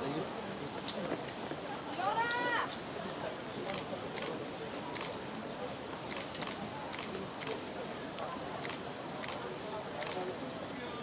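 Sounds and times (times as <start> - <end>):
murmur of crowd chatter: 0.0 - 11.0.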